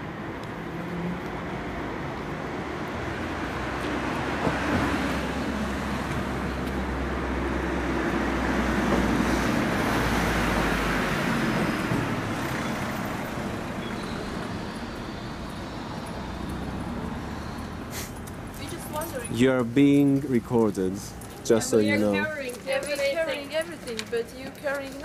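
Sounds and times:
passing vehicle engine and tyres: 0.0s - 25.0s.

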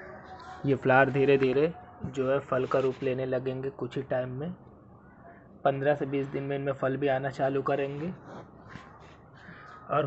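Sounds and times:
faint bird call: 8.6s - 10.0s.

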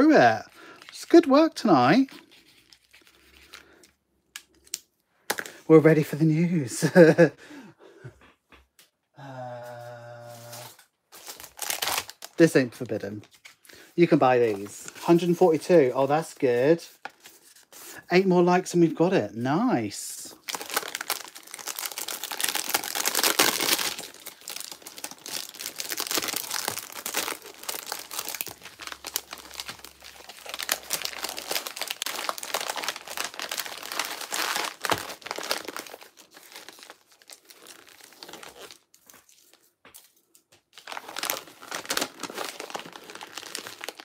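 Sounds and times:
plastic and paper crinkling: 0.0s - 3.9s, 10.4s - 17.9s, 20.2s - 44.0s.

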